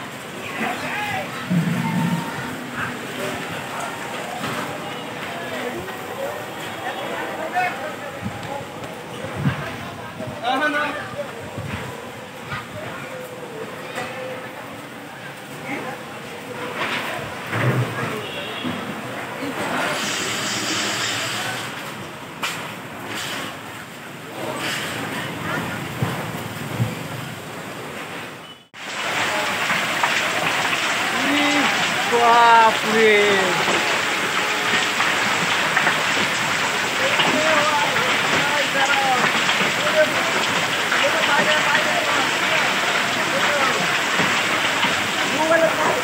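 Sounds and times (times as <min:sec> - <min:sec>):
hail impacts: 0:00.0 - 0:09.8, 0:28.8 - 0:46.0
heavy rain hiss: 0:00.0 - 0:46.0
storm wind rushing: 0:01.2 - 0:04.1
sharp knock: 0:01.5 - 0:02.8.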